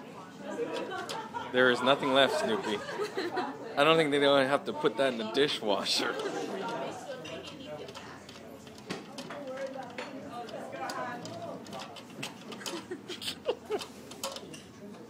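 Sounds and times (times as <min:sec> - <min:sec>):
restaurant diners chatter: 0:00.0 - 0:15.0.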